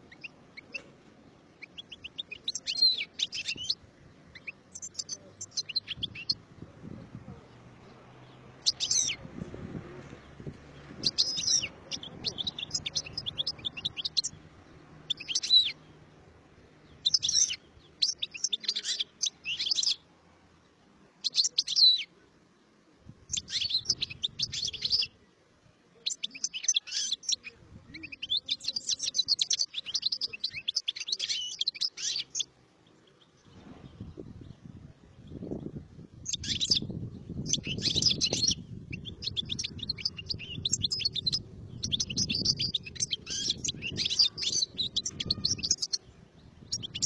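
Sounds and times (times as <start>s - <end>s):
goldfinch twittering song: 1.6s - 6.4s, 8.2s - 9.2s, 10.3s - 15.9s, 16.8s - 20.0s, 21.2s - 22.1s, 23.3s - 25.2s, 26.0s - 32.5s, 35.2s - 47.0s.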